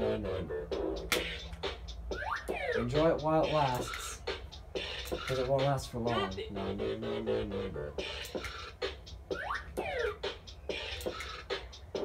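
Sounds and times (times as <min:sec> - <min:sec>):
looping electronic beat with clicks: 0:00.0 - 0:12.0.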